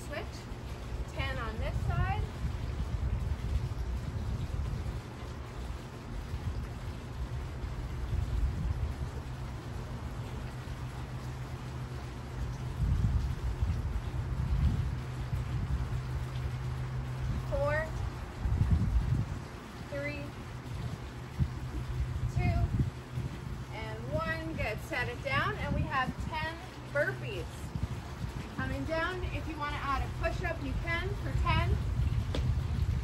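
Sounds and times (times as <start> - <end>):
steady hum: 0.0 - 33.0
wind buffeting microphone: 1.1 - 33.0.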